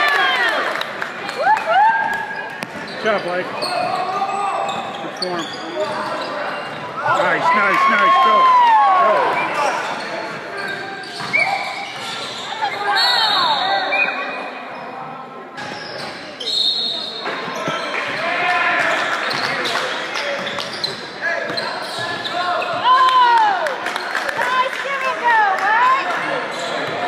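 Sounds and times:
voices of players and spectators: 0:00.0 - 0:27.0
sneakers squeaking: 0:02.1 - 0:08.4, 0:09.2 - 0:18.4, 0:19.0 - 0:23.0, 0:26.4 - 0:27.0.

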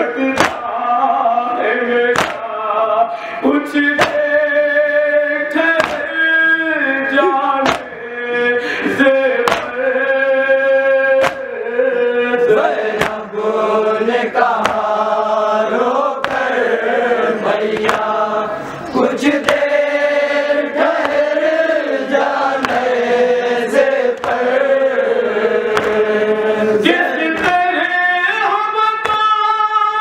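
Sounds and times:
men chanting a lament: 0:00.0 - 0:30.0.

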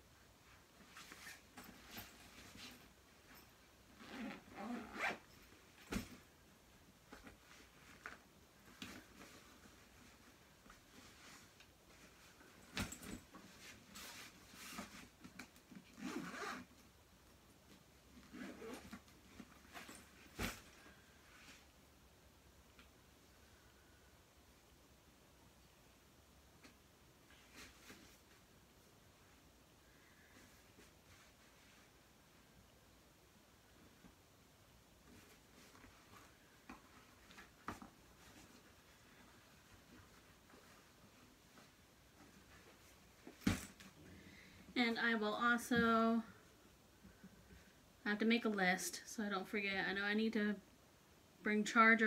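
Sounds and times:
suitcase zipper pulled: 0:03.3 - 0:06.1, 0:15.9 - 0:16.8, 0:18.2 - 0:19.0.

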